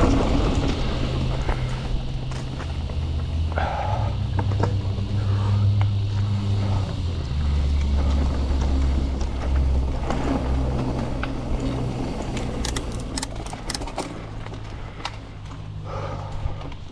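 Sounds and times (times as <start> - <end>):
bike clicks and rattles: 0.0 - 16.9
bike tyres rumbling on dirt: 0.0 - 16.9.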